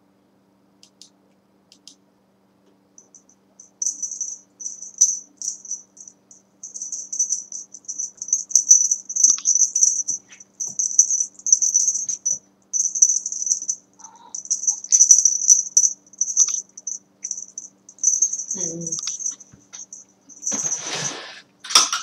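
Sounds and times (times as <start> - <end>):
cat toy rattling jingle: 3.0 - 21.0.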